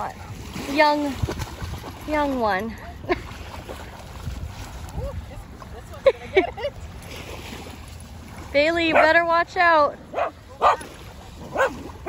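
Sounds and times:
dog barking: 10.1 - 10.9, 11.5 - 11.8.

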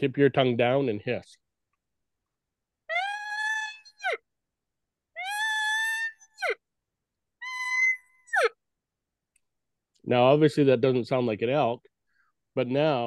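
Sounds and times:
high-pitched elk call tones: 7.4 - 8.6.

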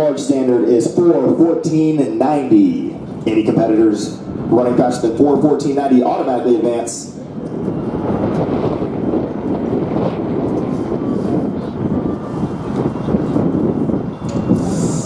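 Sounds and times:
wind noise on microphone: 0.0 - 15.0.

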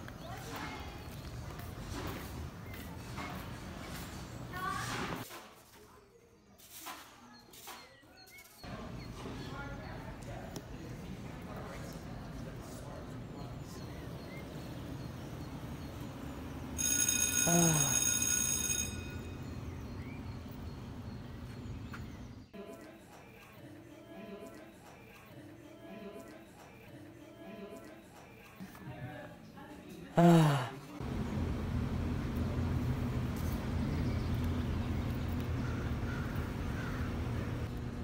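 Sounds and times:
electric school bell ringing: 16.8 - 21.5
low mechanical rumble with hum: 31.0 - 38.0.

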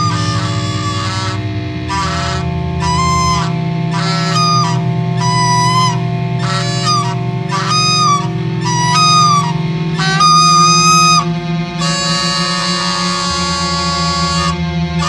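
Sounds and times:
high lead bending notes: 0.0 - 15.0
rock band low drone: 0.0 - 15.0.

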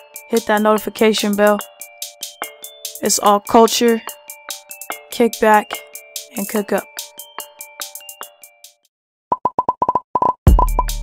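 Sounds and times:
hip-hop beat with bass kicks: 0.0 - 8.8, 10.5 - 11.0.

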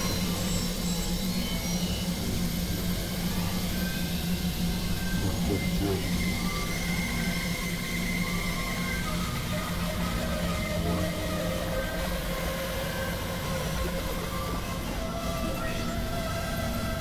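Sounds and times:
dense layered noise drone: 0.0 - 17.0.

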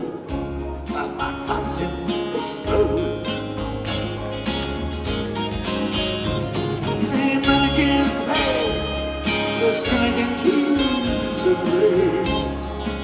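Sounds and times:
live band playing: 0.0 - 13.0.

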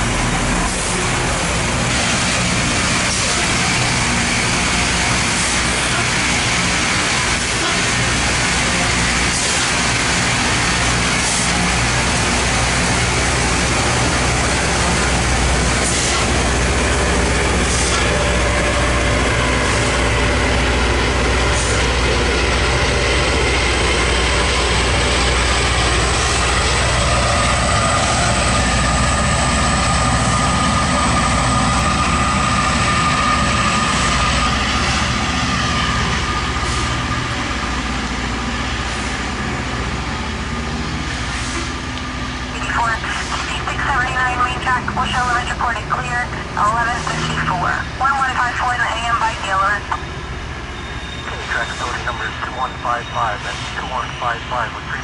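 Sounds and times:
diesel engines droning: 0.0 - 55.0
high whine: 41.8 - 55.0.

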